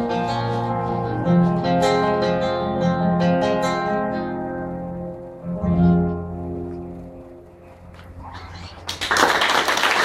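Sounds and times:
acoustic guitar: 0.0 - 9.0
audience applause: 8.8 - 10.0.

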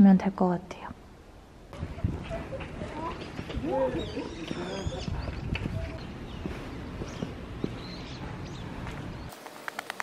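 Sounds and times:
outdoor street noise: 0.0 - 10.0
footsteps on pavement: 1.8 - 9.7.

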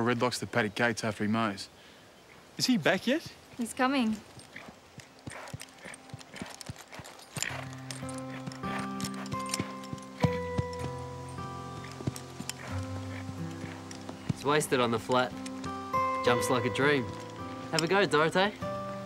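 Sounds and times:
horse hooves clip-clopping: 2.6 - 19.0
soft music with held chords: 5.8 - 19.0.

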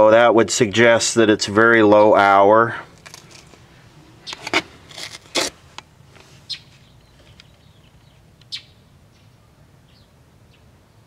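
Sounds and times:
handling clicks and scrapes: 2.9 - 7.6.

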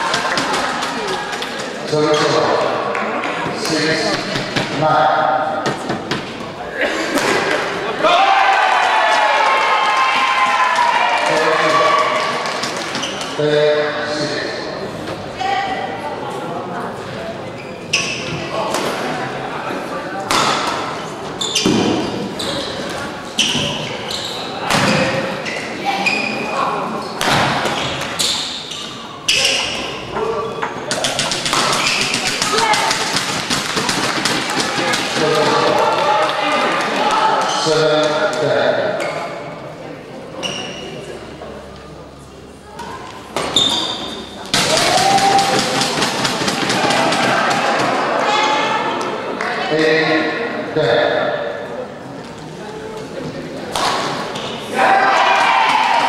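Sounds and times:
spectators shouting: 7.8 - 12.6, 44.6 - 49.1, 54.6 - 56.0
spectators applauding: 9.2 - 13.1
racket striking shuttlecock: 30.9 - 35.6.

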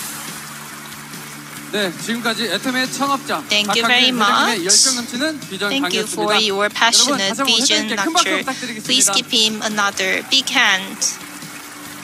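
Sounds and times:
man speaking: 3.5 - 9.5
audience applauding: 3.5 - 11.2.

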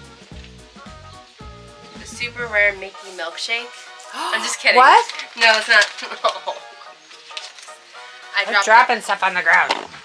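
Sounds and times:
background music with bass line: 0.0 - 3.0
plastic wrapper crinkling: 7.2 - 7.8.

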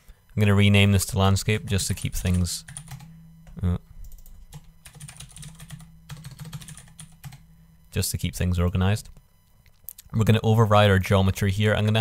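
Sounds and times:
computer keyboard typing: 1.7 - 7.4.

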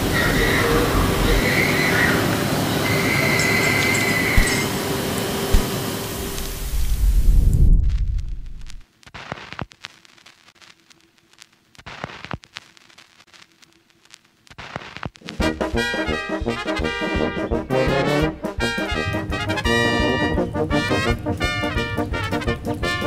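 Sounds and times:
high-pitched squeals: 0.0 - 5.4
grinding rumbling machinery: 0.0 - 7.0, 18.6 - 23.0.

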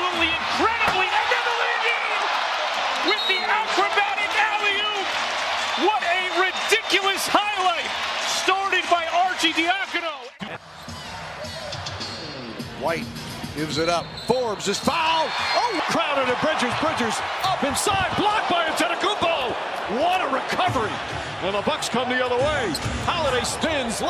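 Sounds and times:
crowd noise: 0.0 - 24.0.

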